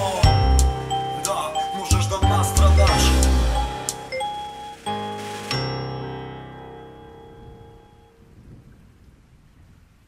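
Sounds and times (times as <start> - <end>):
held music notes: 0.0 - 8.2.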